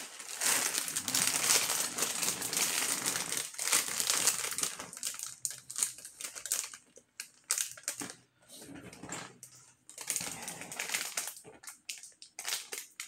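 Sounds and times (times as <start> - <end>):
crinkling and rustling: 0.0 - 13.0.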